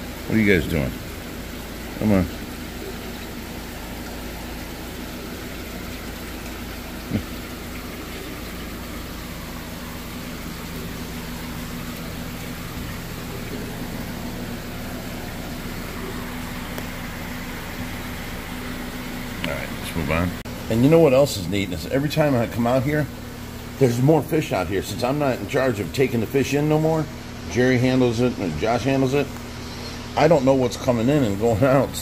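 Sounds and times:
aquarium pumps humming and hissing: 0.0 - 32.0.

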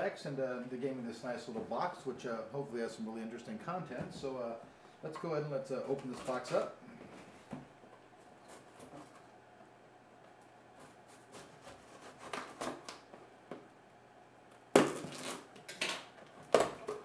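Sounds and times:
blade slitting packing tape: 14.8 - 16.0.

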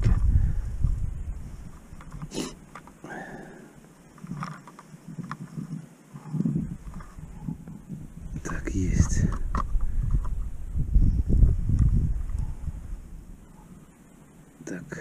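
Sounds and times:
wind rumble on microphone: 0.0 - 2.8, 4.2 - 13.9.

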